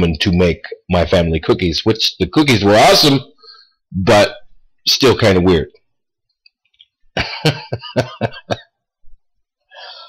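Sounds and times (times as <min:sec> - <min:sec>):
man breathing: 0:03.3 - 0:03.9, 0:09.6 - 0:10.0.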